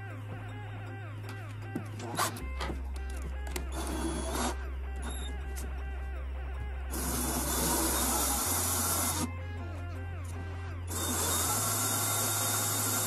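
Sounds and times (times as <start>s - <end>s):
background music: 0.0s - 13.0s
cordless drill spinning: 3.5s - 4.6s, 6.9s - 9.3s, 10.9s - 13.0s.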